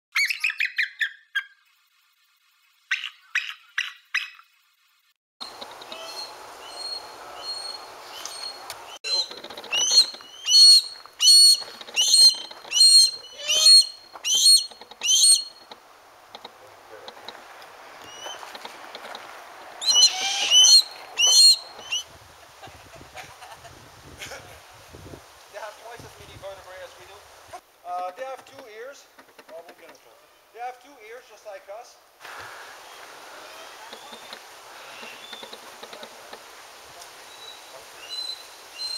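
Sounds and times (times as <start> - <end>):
sharp high bird calls: 0.1 - 1.6, 2.9 - 4.5, 5.5 - 15.7, 18.0 - 18.5, 19.8 - 22.1, 32.9 - 35.6
steady background hiss: 4.3 - 38.9
birds chirping: 5.4 - 22.1, 32.2 - 36.4.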